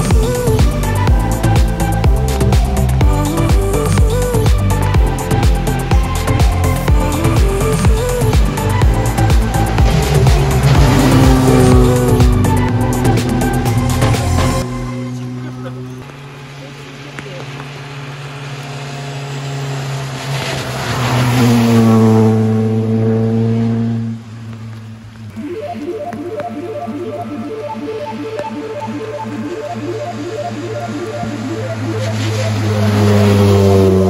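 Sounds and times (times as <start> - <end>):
background music: 0.0 - 15.6, 25.3 - 34.0
rally car passing at speed: 8.6 - 25.3, 30.2 - 34.0.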